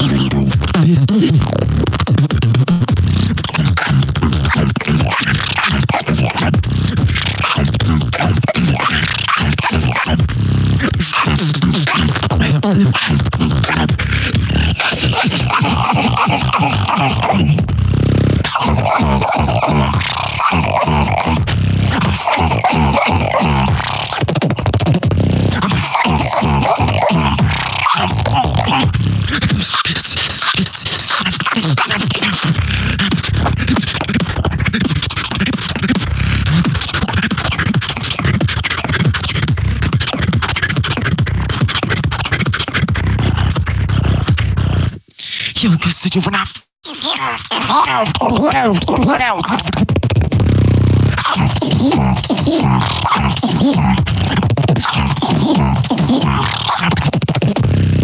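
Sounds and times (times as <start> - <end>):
buzzing vocal bass note: 0.0 - 29.8, 47.2 - 57.0, 57.6 - 58.0
human beatbox: 0.0 - 58.0.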